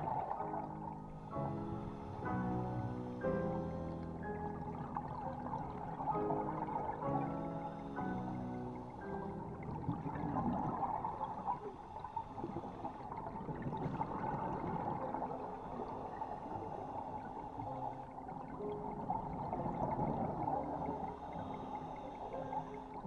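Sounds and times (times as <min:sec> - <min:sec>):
muffled underwater water rush: 0:00.0 - 0:23.0.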